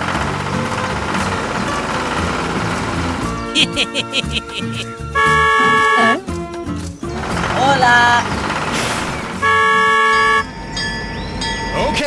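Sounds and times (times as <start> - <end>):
vehicle horn honk: 5.1 - 6.3, 9.3 - 10.6.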